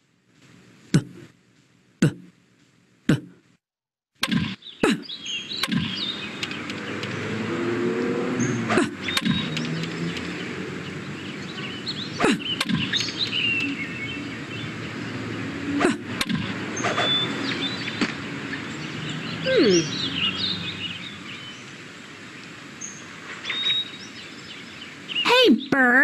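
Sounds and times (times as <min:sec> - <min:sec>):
birds chirping: 0:04.2 - 0:26.0
outdoor hiss: 0:16.6 - 0:26.0.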